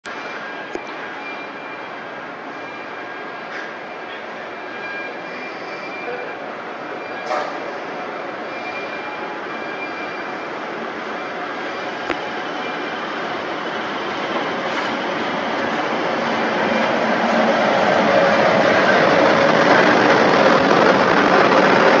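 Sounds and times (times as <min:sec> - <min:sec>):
diesel locomotive rumbling: 0:00.1 - 0:22.0.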